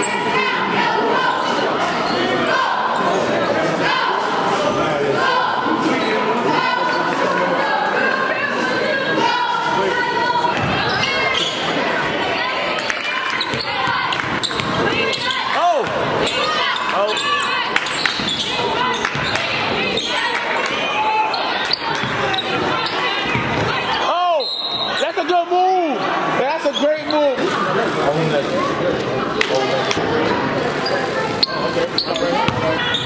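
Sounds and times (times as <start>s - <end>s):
many voices in a gym: 0.0s - 33.0s
referee's whistle: 24.3s - 25.1s.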